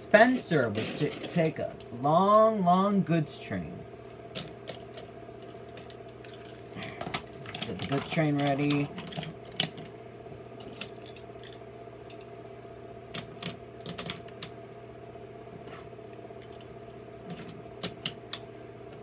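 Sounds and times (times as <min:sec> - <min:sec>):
faint hum: 0:00.0 - 0:19.0.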